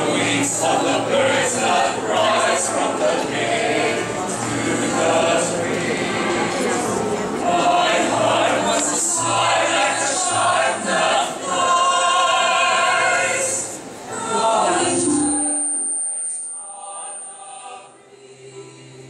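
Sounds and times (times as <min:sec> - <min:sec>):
mixed choir singing in harmony: 0:00.0 - 0:19.0.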